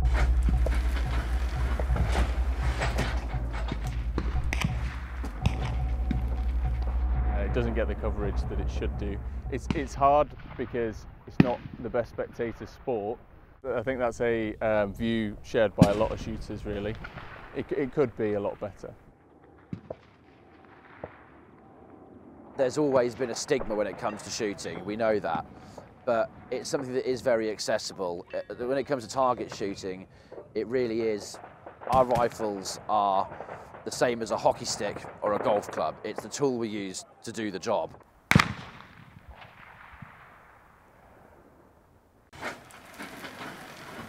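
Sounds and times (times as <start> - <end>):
rifle shot echoing: 0.0 - 7.4, 15.8 - 18.4, 19.4 - 22.2, 38.3 - 41.4
faint outdoor background: 0.0 - 44.0
distant rifle shot: 19.4 - 21.7, 38.3 - 41.4.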